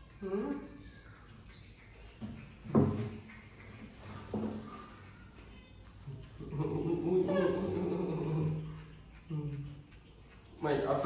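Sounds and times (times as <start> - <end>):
drawn-out vocal sound: 6.4 - 9.9.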